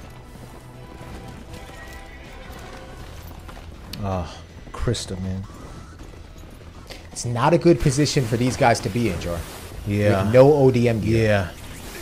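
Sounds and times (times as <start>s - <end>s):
horses' hooves galloping: 0.0s - 9.1s
background score music: 0.0s - 12.0s.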